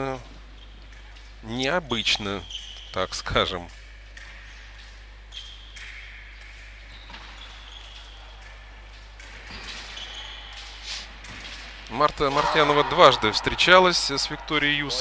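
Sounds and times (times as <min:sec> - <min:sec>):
shoes squeaking: 0:06.7 - 0:08.8, 0:09.4 - 0:11.1.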